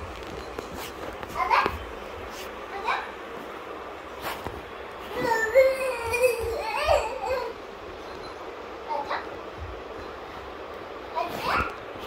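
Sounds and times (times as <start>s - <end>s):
toddler crying: 5.1s - 7.6s
toddler vocalizing: 5.1s - 7.6s.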